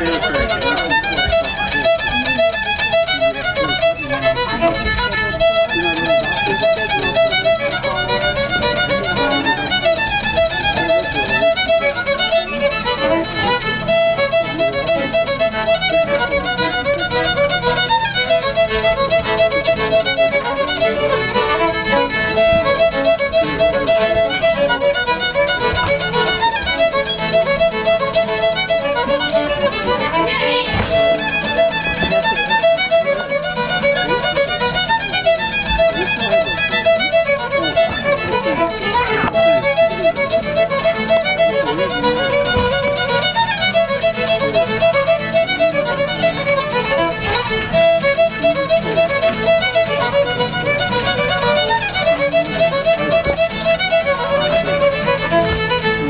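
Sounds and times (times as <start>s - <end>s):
fiddles playing a tune: 0.0s - 56.0s.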